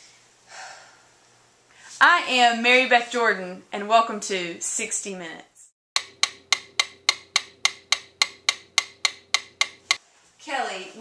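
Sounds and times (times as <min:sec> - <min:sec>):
stopwatch ticking: 0:06.0 - 0:10.0.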